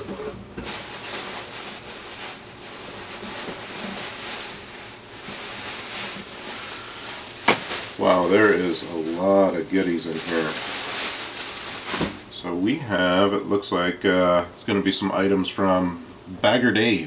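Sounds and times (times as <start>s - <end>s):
packaging rustling and scraping: 0.0s - 12.4s.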